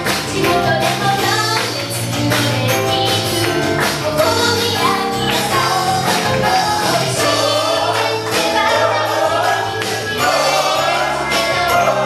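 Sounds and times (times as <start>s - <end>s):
girls singing pop song: 0.0s - 12.0s
loud backing music: 0.0s - 12.0s.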